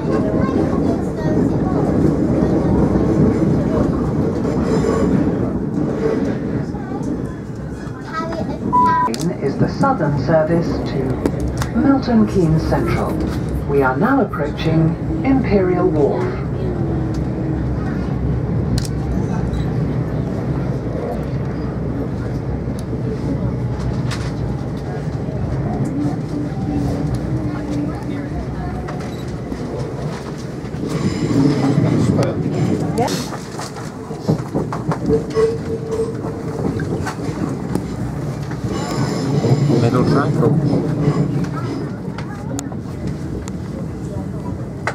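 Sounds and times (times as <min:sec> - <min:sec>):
train wheels rumbling: 0:00.0 - 0:44.9.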